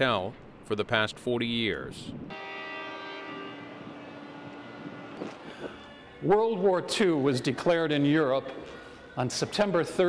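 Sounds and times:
ship's horn long note: 2.3 - 6.4.

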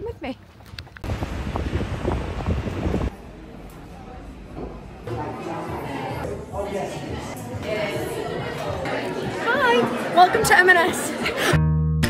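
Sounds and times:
wind buffeting microphone: 0.0 - 3.1.

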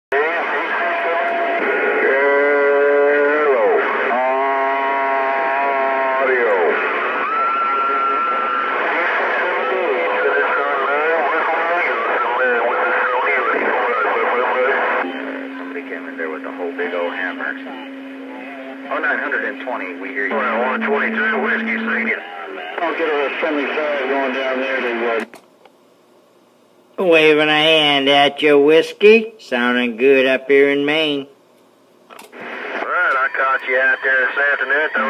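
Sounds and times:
garbled radio voices: 8.3 - 25.3, 32.4 - 35.0.

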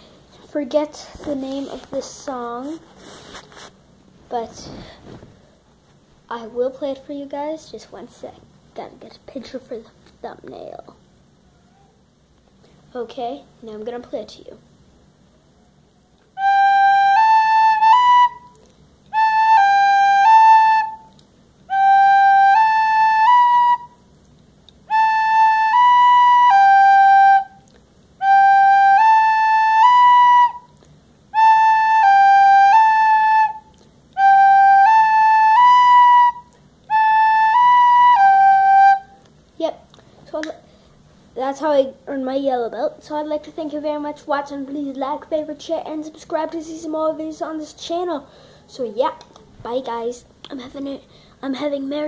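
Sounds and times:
recorder playing simple tune: 16.3 - 24.0, 24.8 - 39.2.

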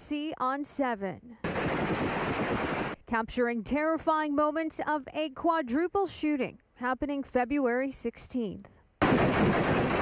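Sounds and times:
rapid gunfire barrage: 1.4 - 3.0, 9.0 - 10.0.

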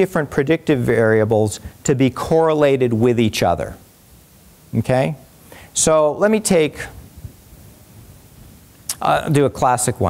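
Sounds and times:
microphone room hiss: 0.0 - 10.0
breath intake: 5.4 - 5.8.

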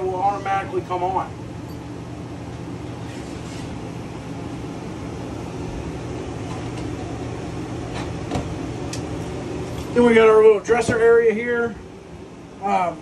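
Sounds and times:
rooftop air conditioner humming: 0.0 - 13.0.

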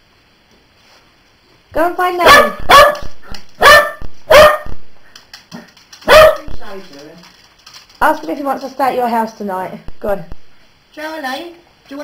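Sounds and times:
dog barking: 2.2 - 4.8, 6.0 - 6.5.

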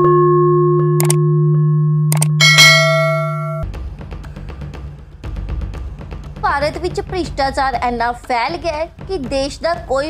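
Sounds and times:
sustained ringing tone: 0.3 - 3.6
sharp clicks: 1.0 - 1.2, 2.1 - 2.3
bright bell-like chime: 2.4 - 3.6.

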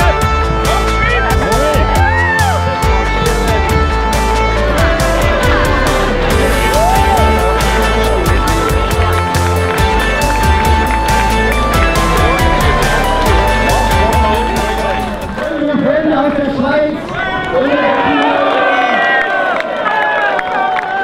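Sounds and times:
music with steady beat: 0.0 - 15.4.

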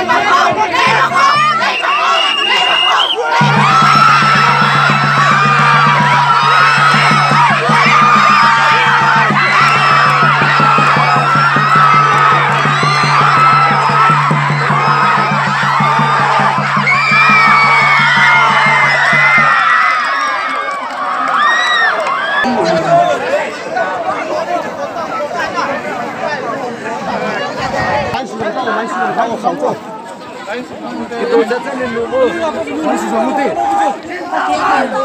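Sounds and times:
crowd cheering and shouting: 0.0 - 35.0
rapid hand drum beating: 3.4 - 19.6.

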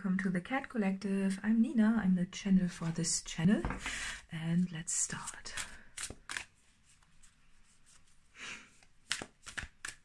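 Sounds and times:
soft card rustle: 4.6 - 10.0.

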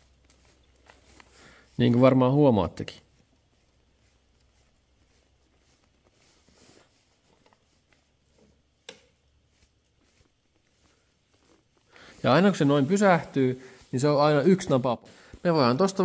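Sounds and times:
faint clicks and rustles: 0.0 - 16.0.

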